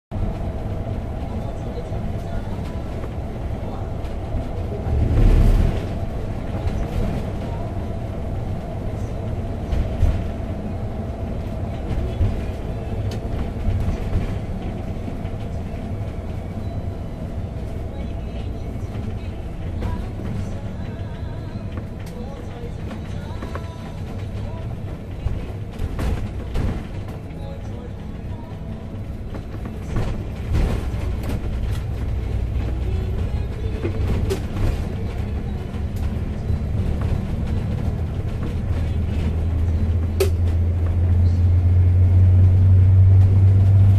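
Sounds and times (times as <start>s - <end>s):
engine and road noise in vehicle: 0.1s - 43.9s.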